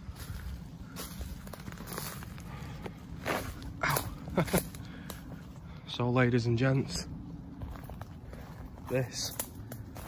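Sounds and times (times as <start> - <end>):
footsteps through leaf litter: 0.0 - 3.7.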